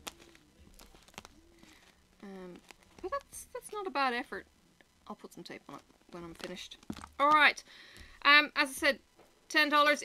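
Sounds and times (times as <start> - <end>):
cardboard card taps and clicks: 0.0 - 2.0, 6.4 - 8.3.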